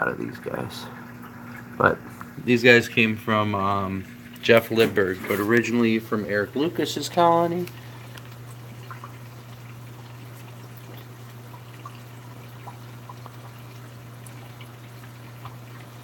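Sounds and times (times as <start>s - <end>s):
aquarium sponge filter bubbling: 0.0s - 16.0s
steady low hum: 0.0s - 16.0s
faint drips and pops: 4.0s - 16.0s.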